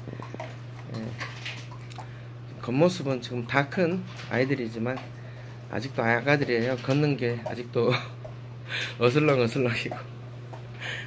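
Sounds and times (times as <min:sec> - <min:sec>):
puppies crunching kibble: 0:00.0 - 0:02.2.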